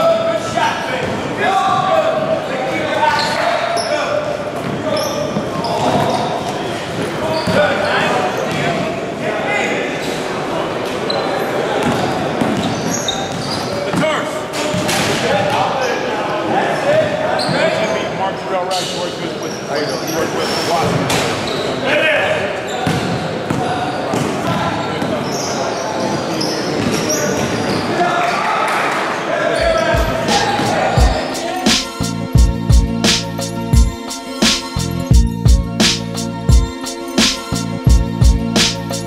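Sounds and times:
voices echoing in gym: 0.0 - 32.0
basketballs bouncing on hardwood: 22.8 - 25.1.

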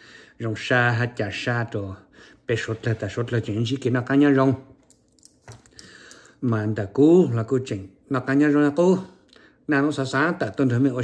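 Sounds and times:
man speaking: 0.4 - 4.7, 6.4 - 11.0.

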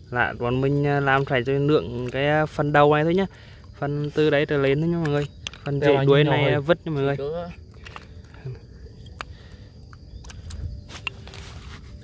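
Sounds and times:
snail shells clicking together: 0.6 - 2.8, 4.8 - 5.9, 7.6 - 11.2
rustling: 10.8 - 12.0.

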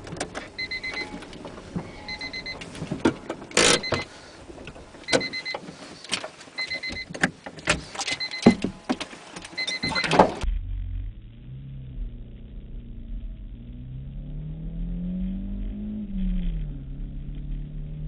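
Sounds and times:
clicks and knocks inside car: 0.0 - 10.4
electronic beeper beeping: 1.9 - 2.6, 3.6 - 4.1, 9.6 - 10.4.

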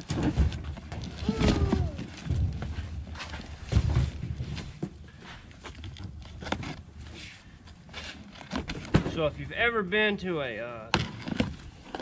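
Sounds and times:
cardboard rustling: 0.0 - 9.2.

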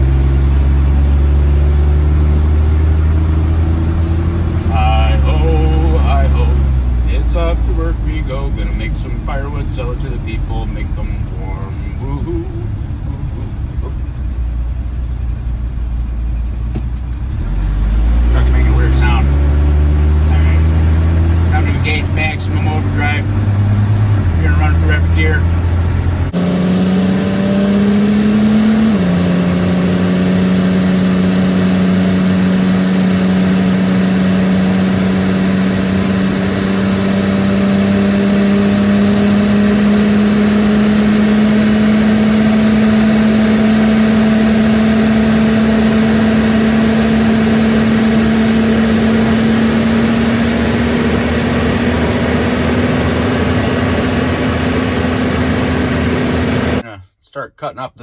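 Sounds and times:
pickup truck engine: 0.0 - 57.0
road and tire noise: 0.0 - 57.8.

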